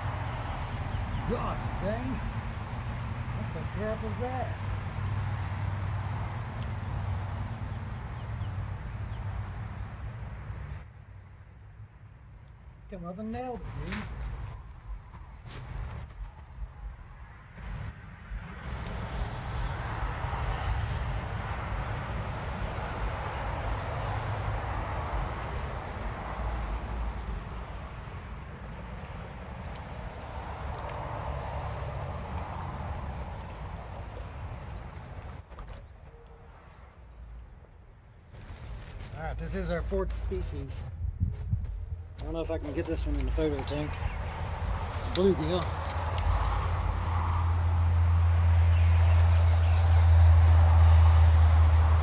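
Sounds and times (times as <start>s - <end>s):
road traffic passing: 0.0s - 52.0s.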